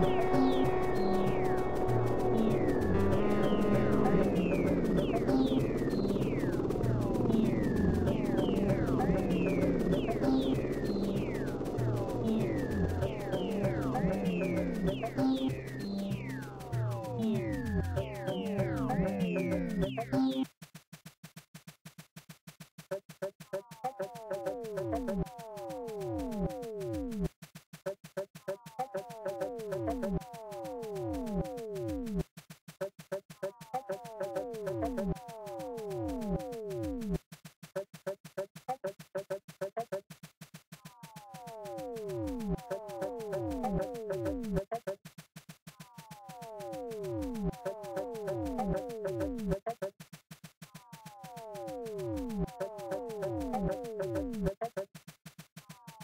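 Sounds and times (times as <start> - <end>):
synth tones sliding down: 0.0 - 20.4, 33.4 - 37.2, 40.9 - 44.6, 45.7 - 49.6, 50.6 - 54.6
electronic music: 0.0 - 20.5, 22.8 - 27.3, 27.9 - 32.2, 32.8 - 40.1, 40.8 - 45.0, 45.7 - 50.0, 50.6 - 54.9, 55.6 - 56.0
fast ticking beat: 0.0 - 56.0.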